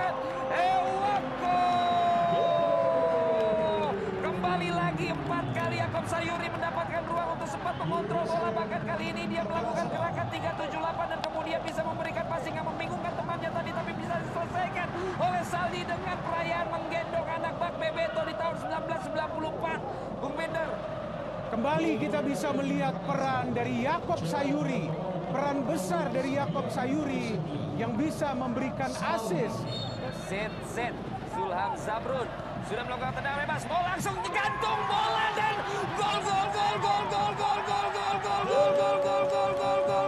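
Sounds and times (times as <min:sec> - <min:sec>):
men calling and talking: 0:31.0 - 0:40.0
man's long drawn-out shout: 0:36.1 - 0:40.0.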